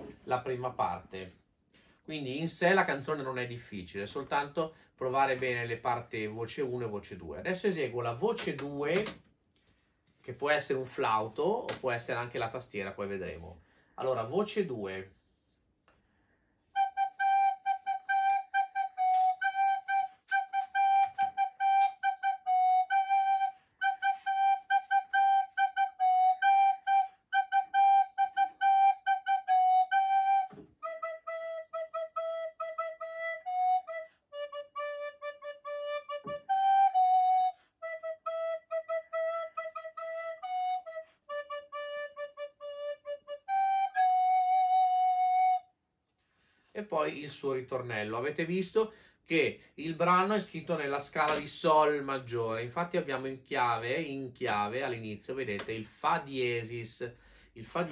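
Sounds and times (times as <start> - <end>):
wooden recorder melody: 16.8 - 45.8.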